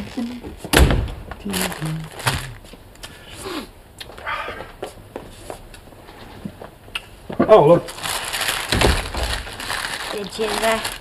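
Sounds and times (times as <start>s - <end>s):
tissue paper rustling: 1.4s - 2.6s, 7.8s - 11.0s.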